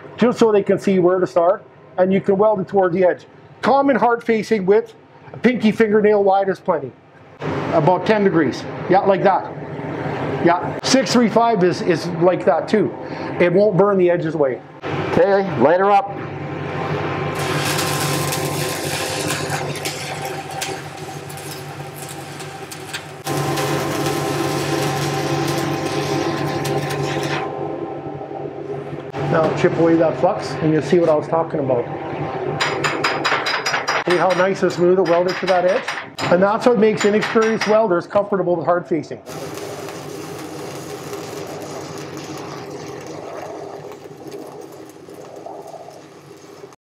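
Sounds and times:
low hum: 14.5s - 33.4s, 39.3s - 46.8s
welding arc crackling: 17.3s - 27.5s, 39.3s - 46.8s.

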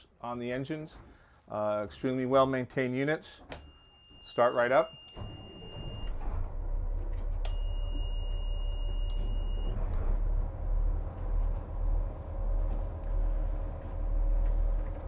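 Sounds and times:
steady high beep: 3.7s - 6.1s, 7.5s - 9.8s
diesel engines idling: 5.2s - 15.0s.

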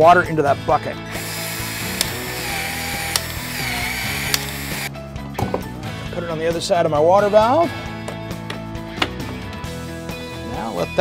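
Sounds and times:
pipe expansion tool motor: 1.0s - 4.9s
sharp tool clicks: 1.1s - 4.9s.

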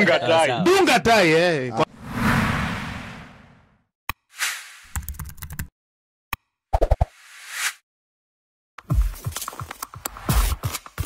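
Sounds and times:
whoosh: 1.9s - 3.7s.

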